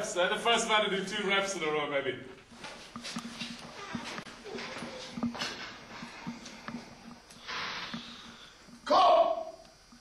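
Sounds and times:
man breathing hard: 6.0s - 8.7s.

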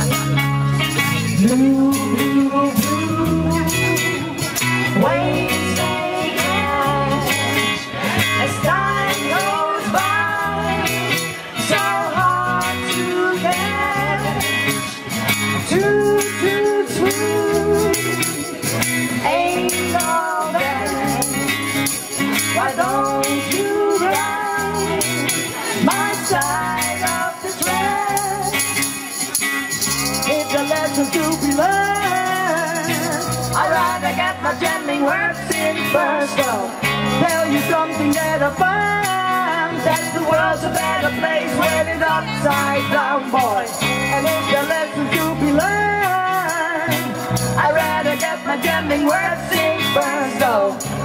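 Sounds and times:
bass guitar: 0.0s - 51.0s
drums: 0.0s - 51.0s
electric guitar lead: 0.0s - 51.0s
jingling hand percussion: 0.0s - 51.0s.

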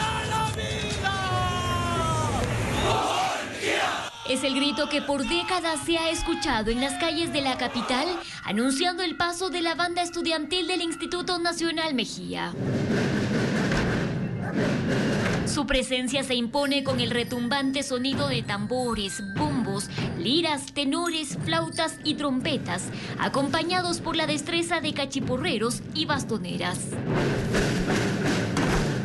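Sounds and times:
snare and bass drums: 12.6s - 15.5s, 26.9s - 29.0s.

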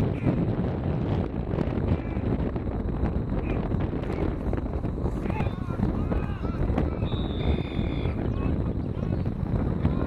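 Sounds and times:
wind rumble on microphone: 0.0s - 10.0s
referee's whistle: 6.9s - 8.4s.

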